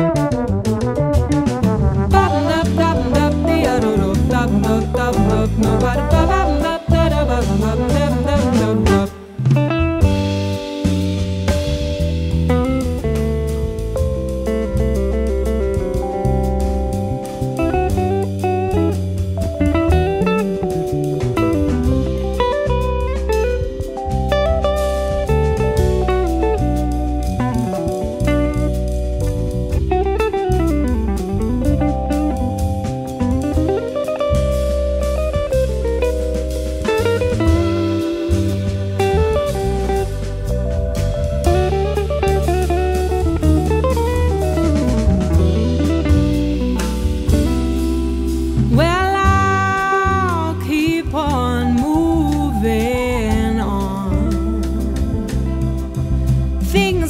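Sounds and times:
bass: 0.0s - 57.0s
drum kit: 0.0s - 57.0s
electric guitar solo: 2.1s - 57.0s.

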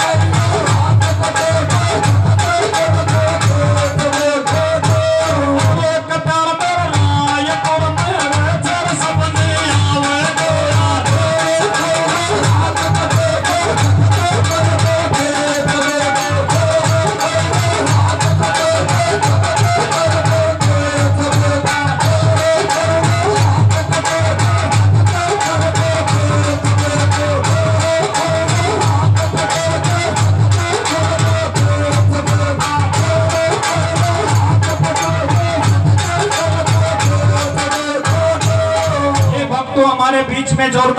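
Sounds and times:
repeating drum beat: 0.0s - 39.7s
men singing a folk song: 8.7s - 40.9s.

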